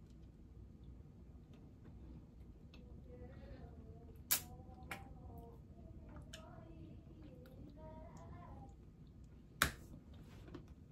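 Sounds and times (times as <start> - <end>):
faint hum: 0.0 - 10.9.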